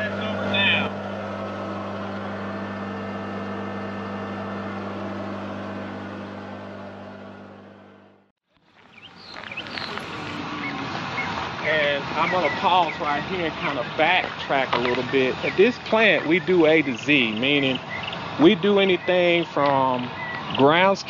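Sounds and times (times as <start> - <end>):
machine droning: 0.0 - 21.0
outdoor background: 0.0 - 21.0.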